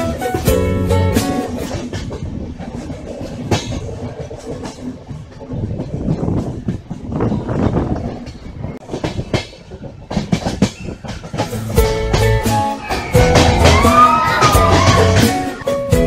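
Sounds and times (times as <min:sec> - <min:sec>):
train rumbling on track: 0:00.0 - 0:16.0
wheel clacks over rail joints: 0:00.0 - 0:16.0.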